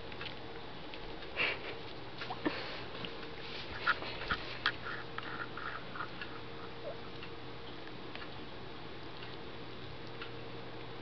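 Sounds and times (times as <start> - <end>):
cat sniffing: 1.4 - 7.1.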